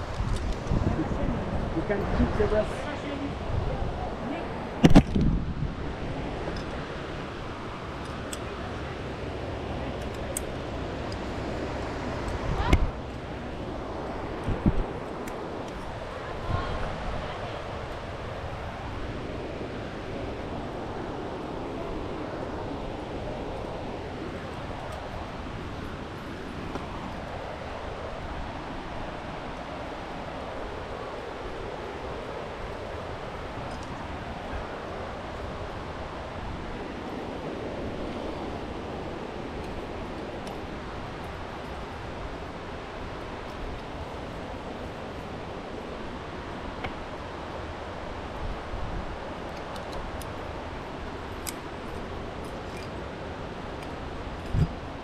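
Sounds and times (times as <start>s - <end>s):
wind noise on microphone: 0.0s - 55.0s.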